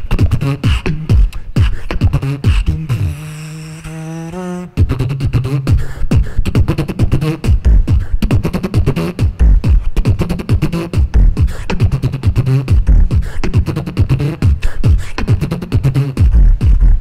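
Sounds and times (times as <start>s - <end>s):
beatboxed held bass note: 0.0s - 17.0s
beatboxing mouth percussion: 0.0s - 17.0s.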